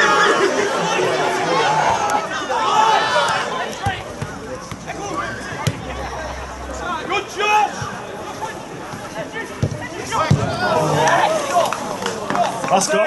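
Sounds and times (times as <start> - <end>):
spectators chattering and calling out: 0.0 - 13.0.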